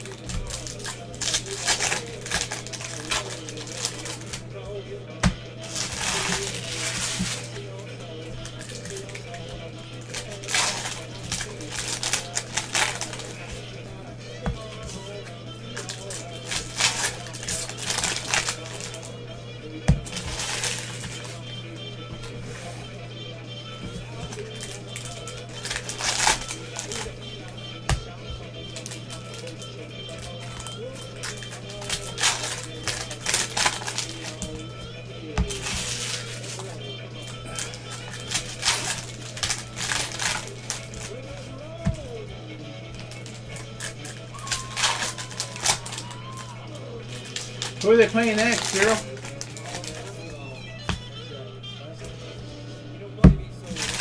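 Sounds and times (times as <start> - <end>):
card wrappers rustling and crinkling: 0.0 - 13.8, 14.4 - 19.2, 19.8 - 22.9, 23.8 - 42.3, 42.9 - 51.1, 53.2 - 54.0
background music: 0.0 - 54.0
faint voices: 0.0 - 54.0.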